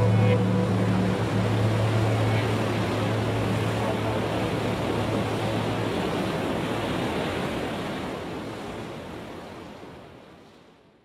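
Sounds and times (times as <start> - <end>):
low hum: 0.0 - 6.0
waves rushing: 0.0 - 10.4
wind: 0.0 - 11.0.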